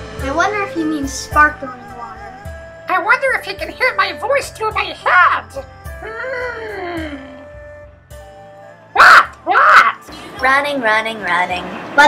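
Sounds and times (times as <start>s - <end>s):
faint background music: 0.0s - 12.0s
child yelling: 4.7s - 5.6s, 9.0s - 10.1s.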